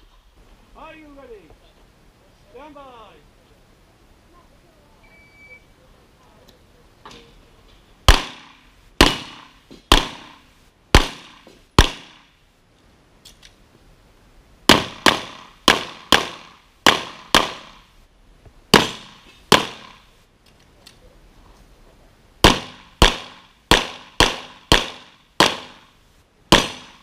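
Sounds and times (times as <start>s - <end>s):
pistol shots: 8.1s - 12.3s, 14.7s - 17.8s, 18.7s - 20.1s, 22.4s - 25.9s, 26.5s - 27.0s.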